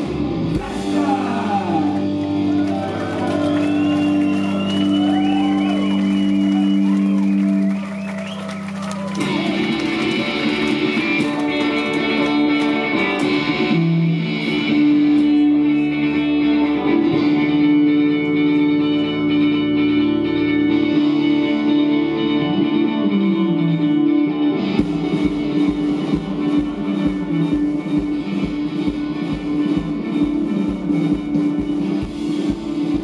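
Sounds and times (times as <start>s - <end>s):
live rock band: 0.0s - 33.0s.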